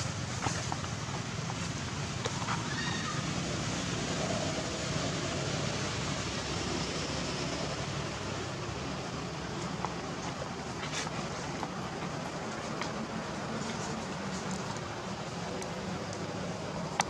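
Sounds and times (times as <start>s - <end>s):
steady rushing background noise: 0.0s - 17.0s.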